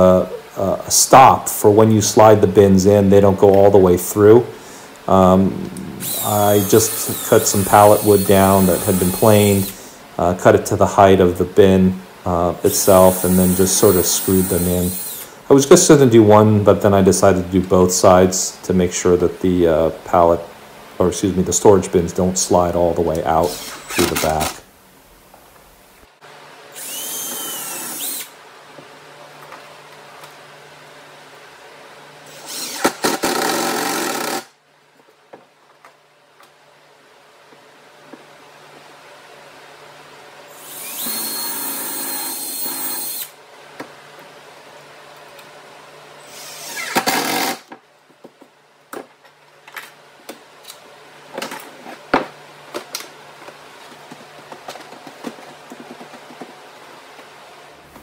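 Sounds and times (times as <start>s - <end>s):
cordless drill driving screws: 6.0s - 9.7s, 12.8s - 15.3s, 23.4s - 24.6s, 26.8s - 28.3s, 32.3s - 34.5s, 40.5s - 43.3s, 46.2s - 47.6s.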